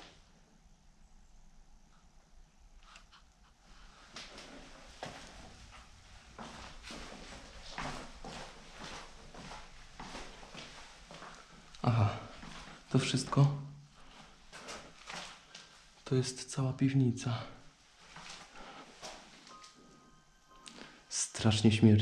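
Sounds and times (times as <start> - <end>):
footsteps on concrete stairs: 6.4 - 11.6.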